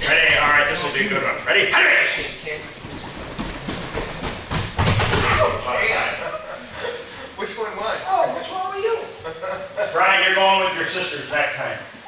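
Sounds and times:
bodies thudding on mats: 0:02.6 - 0:05.6
bare feet slapping on mats: 0:02.7 - 0:05.7.

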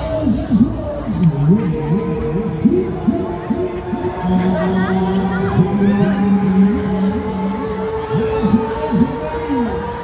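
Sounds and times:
fairground ride music: 0:00.0 - 0:10.0
voices over music: 0:00.0 - 0:10.0.

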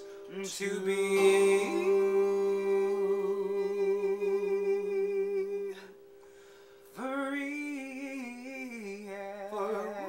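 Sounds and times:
men humming in harmony: 0:01.1 - 0:05.9.

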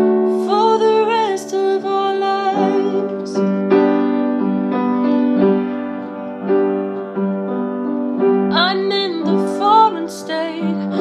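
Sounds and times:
piano playing sustained chords: 0:00.0 - 0:11.0.

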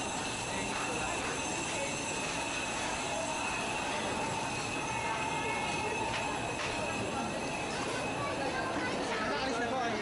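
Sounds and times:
faint chatter: 0:00.0 - 0:10.0.

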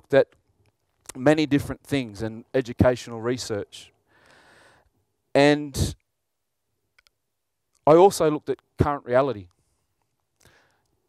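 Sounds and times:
man speaking: 0:01.1 - 0:03.9, 0:05.4 - 0:06.0, 0:07.9 - 0:09.5.

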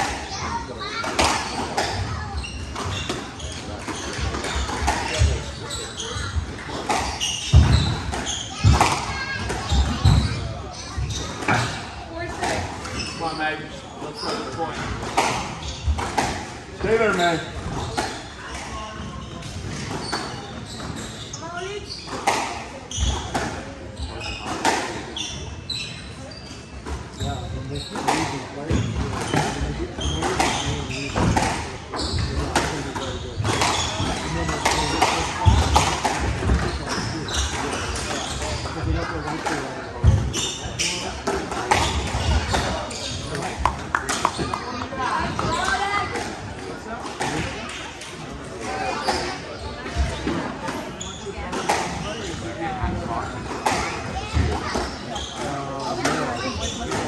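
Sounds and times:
spectators chattering: 0:00.0 - 0:57.0.

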